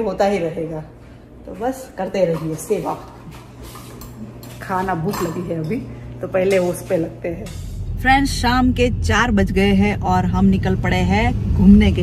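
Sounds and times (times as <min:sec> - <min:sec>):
steady low hum: 0:00.0 - 0:12.0
dishes and cutlery clattering: 0:02.2 - 0:05.8, 0:06.4 - 0:07.9.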